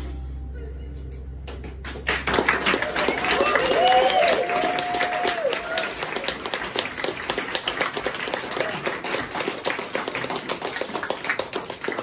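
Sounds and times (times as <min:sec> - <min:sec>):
audience applause: 0:01.8 - 0:12.0
cheering: 0:02.3 - 0:10.3.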